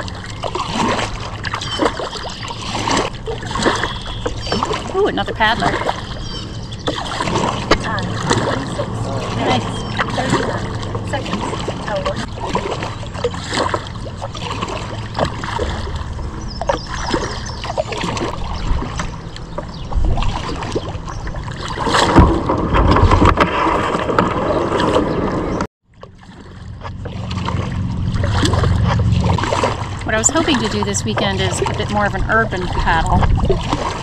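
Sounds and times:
wind rumble on microphone: 0.0s - 25.7s, 26.4s - 34.0s
paddle splashing water: 0.0s - 34.0s.

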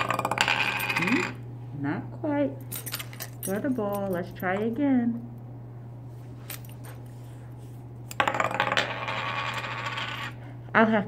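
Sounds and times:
toy tire rolling on tabletop: 0.0s - 1.4s, 8.1s - 10.4s.

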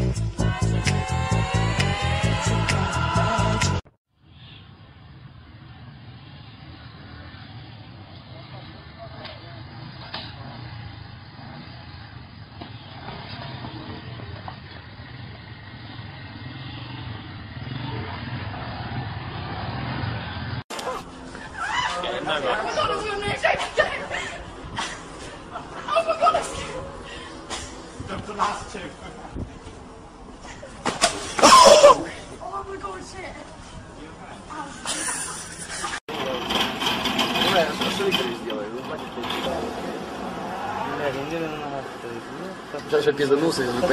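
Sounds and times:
steady background noise: 4.2s - 43.9s
motorcycle engine revving: 5.5s - 21.2s
people talking: 8.1s - 9.8s, 21.6s - 24.4s, 36.1s - 36.6s, 37.2s - 43.9s.

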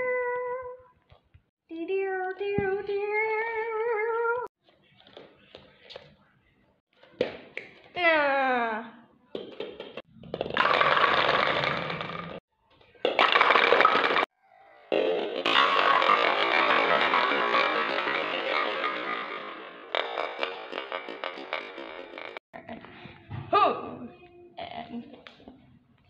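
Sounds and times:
toy bowling pins clattering: 9.4s - 12.4s, 13.0s - 14.3s, 15.0s - 22.4s.

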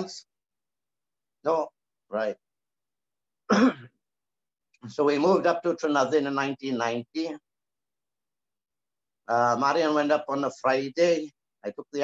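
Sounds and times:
man clearing his throat: 3.5s - 4.0s.

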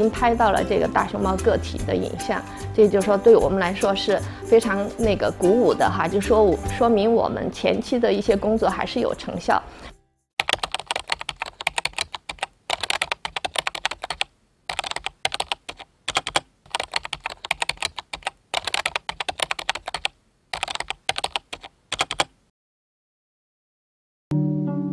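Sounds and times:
computer keyboard typing: 10.4s - 22.4s.

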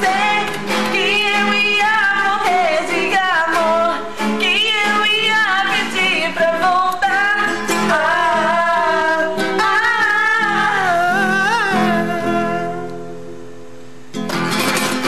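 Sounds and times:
woman singing pop song: 0.0s - 13.0s
strummed acoustic guitar: 0.0s - 15.0s.

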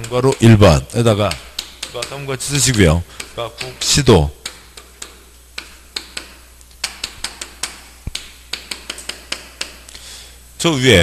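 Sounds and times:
chalk tapping on chalkboard: 0.0s - 9.9s.

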